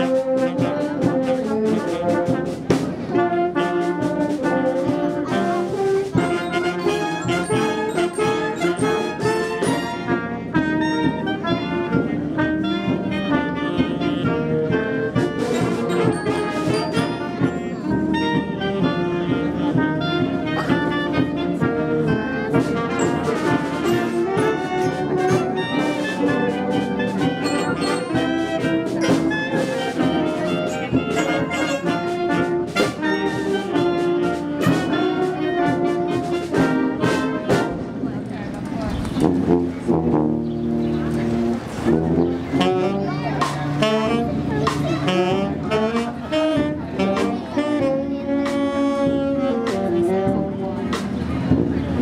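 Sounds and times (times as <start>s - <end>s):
concert band playing: 0.0s - 52.0s.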